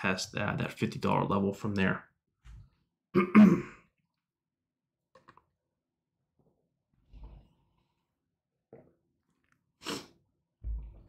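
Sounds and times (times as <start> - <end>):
man clearing his throat: 3.2 - 3.8.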